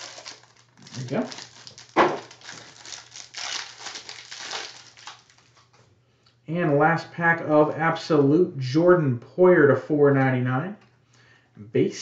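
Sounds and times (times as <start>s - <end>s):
foil wrapper crinkling: 0.0s - 5.7s.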